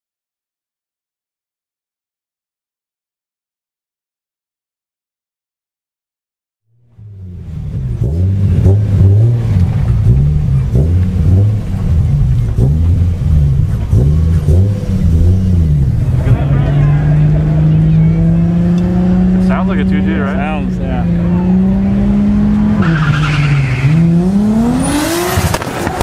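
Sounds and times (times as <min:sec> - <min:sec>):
turbocharged car engine revving: 0:06.9 - 0:26.0.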